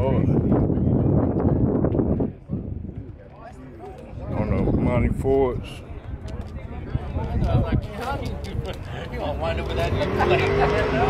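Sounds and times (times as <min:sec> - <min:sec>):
indistinct background voices: 0:00.0 - 0:11.0
wind noise on microphone: 0:00.0 - 0:11.0.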